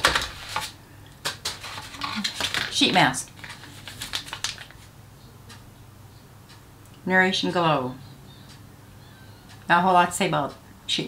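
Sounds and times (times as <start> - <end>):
packaging clicks and taps: 0.0 - 4.8.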